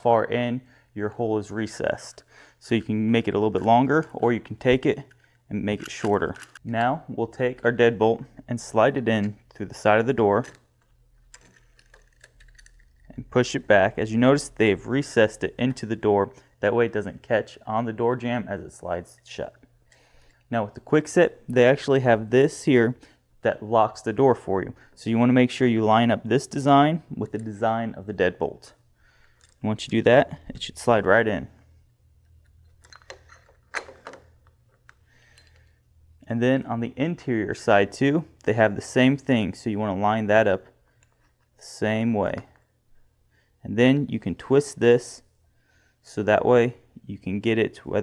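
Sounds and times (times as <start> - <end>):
lock parts clicking and knocking: 3.5 - 7.0, 10.3 - 13.2, 32.2 - 35.8
metal deadbolt latch clicking: 32.8 - 34.3.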